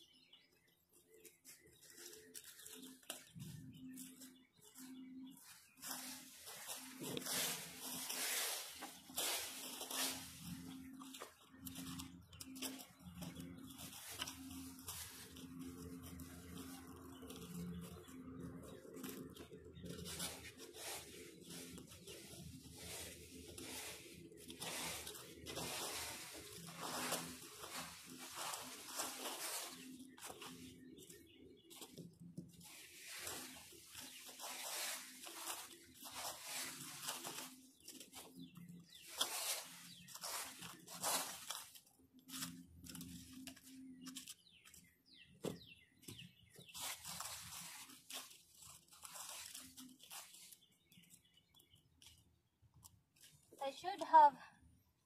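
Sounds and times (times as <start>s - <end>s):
rake scraping through dry leaves: 1.4s - 44.9s, 45.6s - 52.2s.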